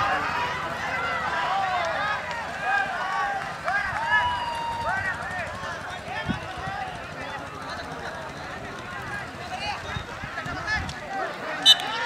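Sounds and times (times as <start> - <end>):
crowd shouting and calling out: 0.0 - 12.0.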